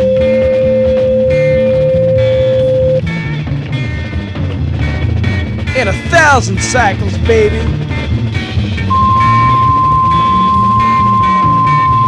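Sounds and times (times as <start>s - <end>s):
steady test tone: 0.0s - 3.0s, 8.9s - 12.0s
rock music: 0.0s - 12.0s.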